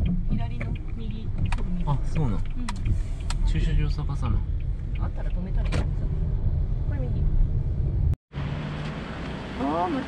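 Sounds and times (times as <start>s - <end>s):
car driving on wet streets: 0.0s - 10.0s.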